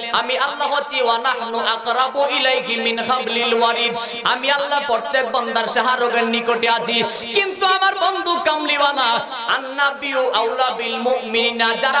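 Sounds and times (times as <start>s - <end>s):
man preaching into microphone: 0.0s - 12.0s.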